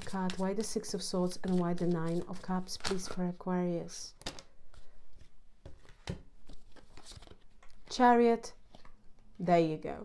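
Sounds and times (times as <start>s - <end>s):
cards being shuffled: 0.0s - 3.4s, 4.2s - 7.9s, 8.6s - 9.0s.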